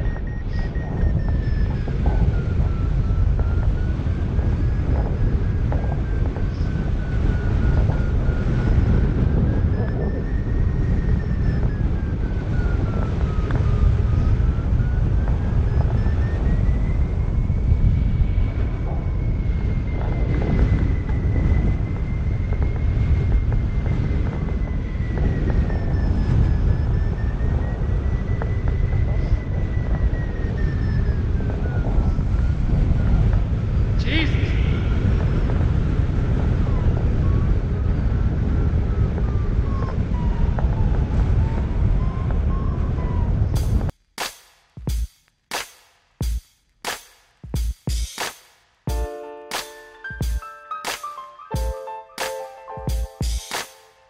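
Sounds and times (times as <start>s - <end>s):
wind buffeting microphone: 0.0s - 43.9s
thin high tone: 48.9s - 54.0s.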